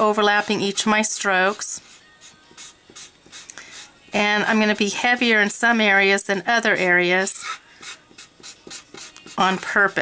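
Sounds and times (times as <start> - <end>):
marker rubbing on paper: 0.1 - 3.9, 7.3 - 10.0.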